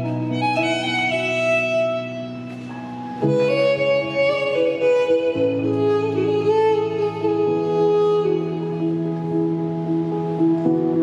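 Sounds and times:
slow bowed violin melody: 0.0s - 11.0s.

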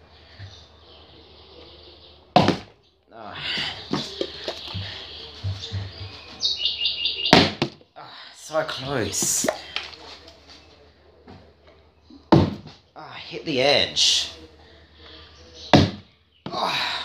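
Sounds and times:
plastic bottle landing thunk: 2.4s - 2.7s, 7.3s - 7.8s, 12.3s - 12.8s, 15.7s - 16.6s.

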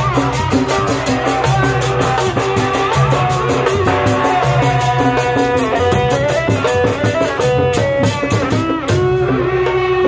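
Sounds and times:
drums and gong beat: 0.0s - 10.0s.

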